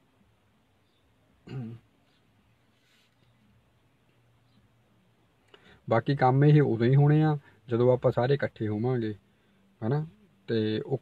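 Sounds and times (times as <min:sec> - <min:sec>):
man clearing throat: 0:01.4 - 0:01.9.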